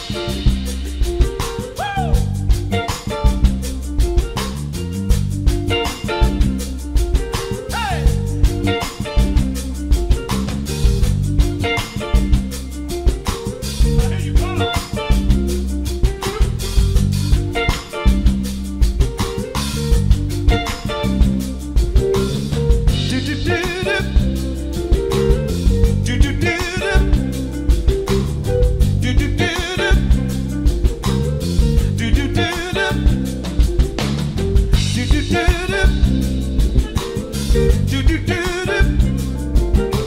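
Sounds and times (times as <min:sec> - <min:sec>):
electric bass line: 0:00.0 - 0:40.0
soul band playing: 0:00.0 - 0:40.0
steady drum beat: 0:00.0 - 0:40.0.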